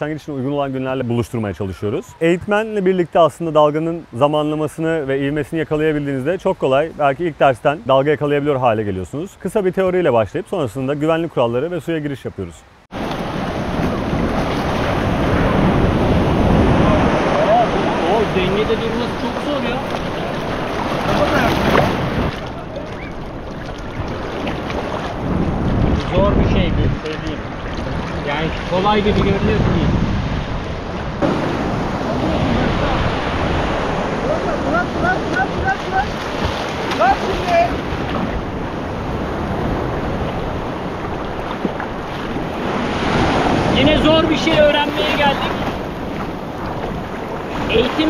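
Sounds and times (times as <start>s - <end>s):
sea waves breaking: 12.8s - 48.0s.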